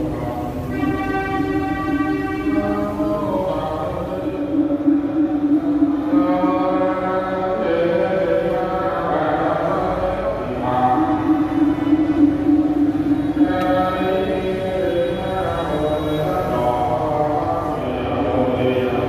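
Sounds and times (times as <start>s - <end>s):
slow chanting: 0.0s - 19.0s.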